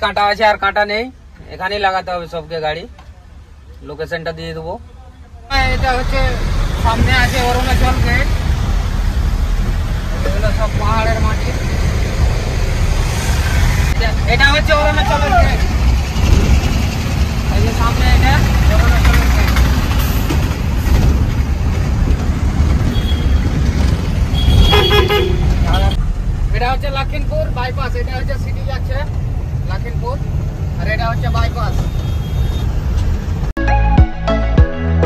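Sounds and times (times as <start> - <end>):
truck engine and road noise: 0.0 - 33.9.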